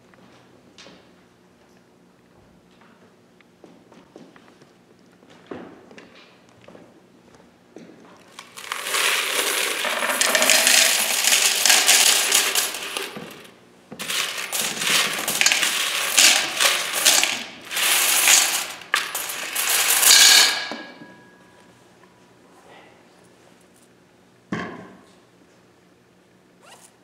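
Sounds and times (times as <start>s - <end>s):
coins pouring into metal bowl: 8.3s - 21.0s
coins ringing in metal bowl: 8.4s - 21.0s.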